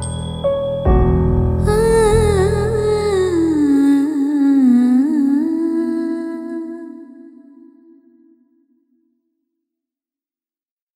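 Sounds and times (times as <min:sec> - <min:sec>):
woman humming: 0:01.6 - 0:08.0.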